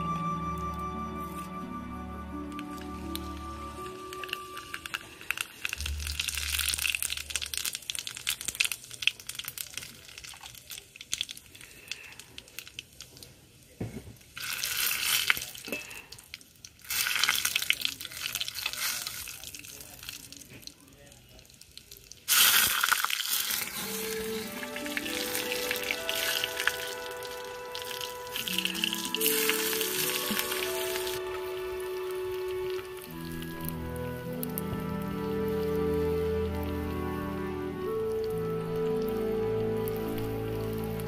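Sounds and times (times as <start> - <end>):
background music: 0.0 - 7.6, 23.6 - 41.0
oil sizzling in a frying pan: 22.3 - 31.3.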